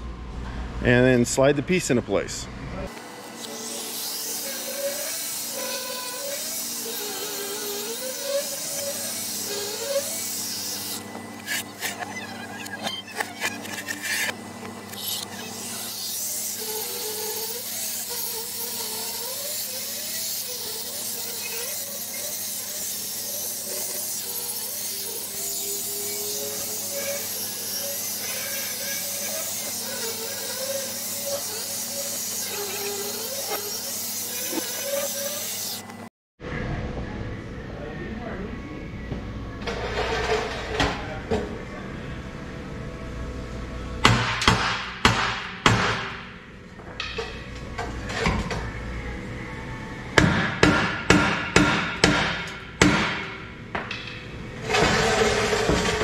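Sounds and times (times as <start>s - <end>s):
angle grinder grinding metal: 2.9s - 36.1s.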